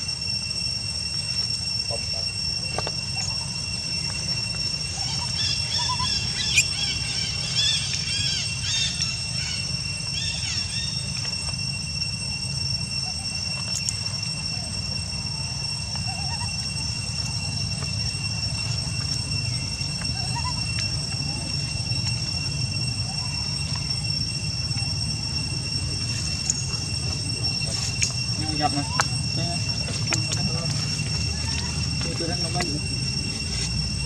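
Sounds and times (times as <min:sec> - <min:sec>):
faint rising chirps: 0:00.0 - 0:34.0
high insect buzz: 0:00.0 - 0:34.0.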